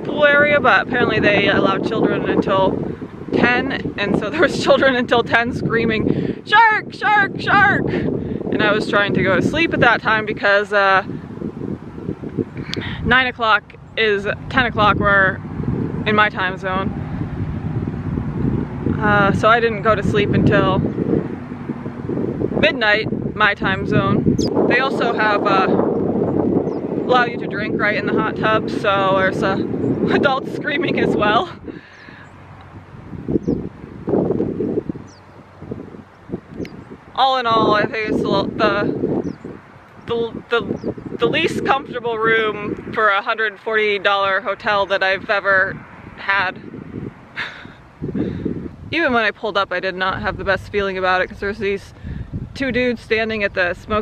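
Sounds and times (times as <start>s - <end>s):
wind buffeting microphone: 0.0s - 54.0s
small birds chirping: 24.2s - 27.4s, 31.6s - 41.3s.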